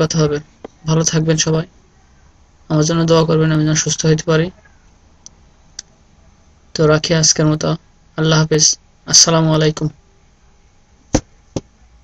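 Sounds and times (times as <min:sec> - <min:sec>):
microphone knocking clicks: 0:11.1 - 0:11.7.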